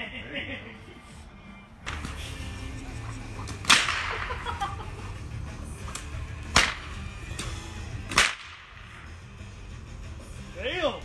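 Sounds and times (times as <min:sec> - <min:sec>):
whip cracking: 0:03.4 - 0:04.6, 0:05.8 - 0:09.1.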